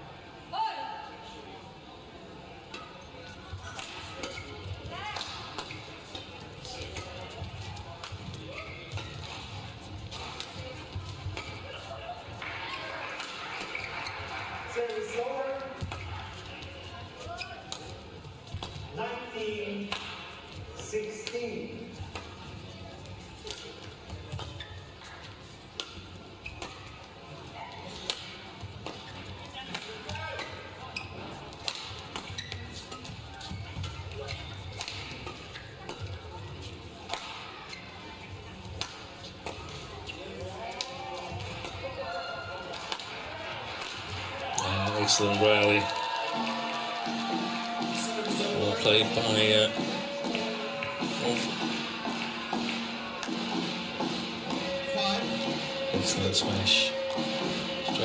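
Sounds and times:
rackets hitting shuttlecock: 3.6s - 16.4s, 25.8s - 27.1s, 27.8s - 30.6s, 31.5s - 36.4s, 37.0s - 37.6s, 38.6s - 42.0s, 42.6s - 45.2s.

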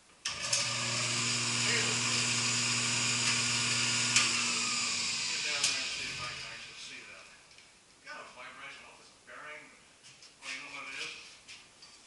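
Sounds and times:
drill press motor humming and whirring: 0.3s - 6.5s.

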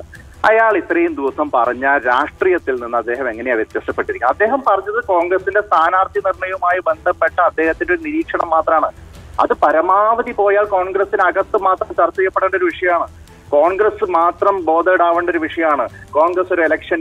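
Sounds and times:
voice talking over telephone: 0.0s - 17.0s.

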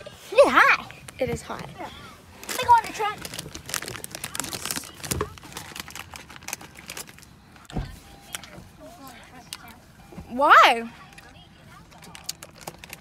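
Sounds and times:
crinkling and rustling clicks: 2.4s - 7.7s, 11.1s - 13.0s.

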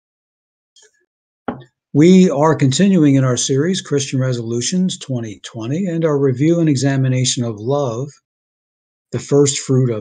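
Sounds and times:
man speaking: 2.0s - 8.2s, 9.2s - 10.0s.

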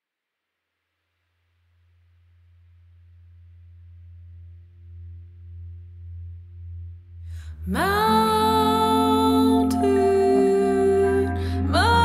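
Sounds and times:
low wavering musical drone: 3.3s - 12.0s
higher tones: 7.5s - 12.0s.

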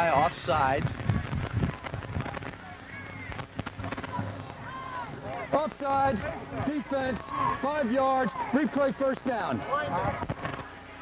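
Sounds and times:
distant voices: 0.0s - 11.0s
stadium crowd noise: 0.0s - 11.0s.

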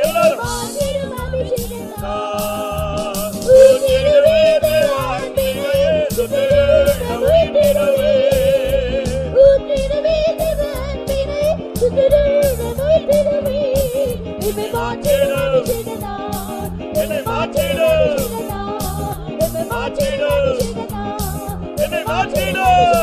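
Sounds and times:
steady rhythmic beat: 0.0s - 23.0s
person singing ornamented melody: 2.0s - 9.2s.

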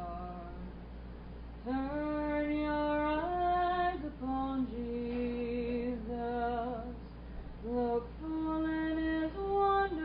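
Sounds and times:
woman singing a hymn: 0.0s - 0.7s, 1.6s - 10.0s
steady low hum: 0.0s - 10.0s.

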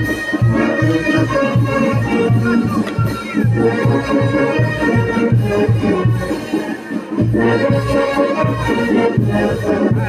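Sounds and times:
live band dance music: 0.0s - 10.0s.

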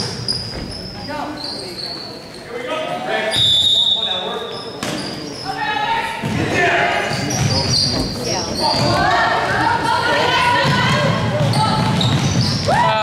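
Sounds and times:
sneakers squeaking: 0.0s - 13.0s
people calling out: 5.4s - 12.0s
basketball bouncing on hardwood: 10.6s - 12.7s.

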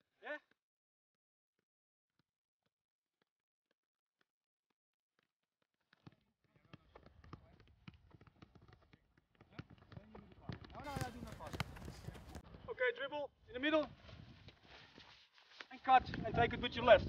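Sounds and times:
balls kicked on artificial turf: 5.9s - 12.6s
voices: 10.1s - 13.8s.

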